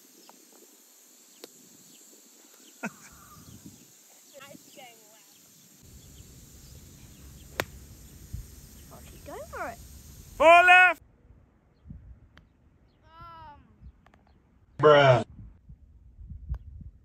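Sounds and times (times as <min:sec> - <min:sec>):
faint hiss: 0:00.0 - 0:11.0
faint calls: 0:02.4 - 0:11.0
wind rumble on microphone: 0:03.1 - 0:03.8, 0:05.9 - 0:10.2, 0:11.1 - 0:14.4, 0:15.2 - 0:17.0
golf club striking ball: 0:07.2 - 0:08.2.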